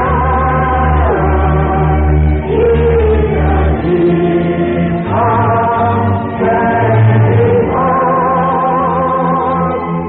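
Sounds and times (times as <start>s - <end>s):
voices singing long notes: 0.0s - 10.0s.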